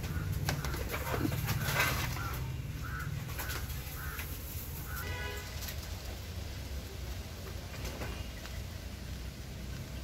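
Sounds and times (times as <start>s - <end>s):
bird calls: 0.0s - 5.6s.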